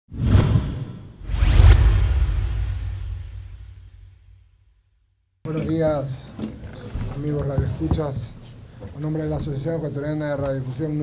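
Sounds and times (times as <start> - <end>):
whoosh sound effects: 0.1 - 4.6
low rumble: 1.2 - 4.9.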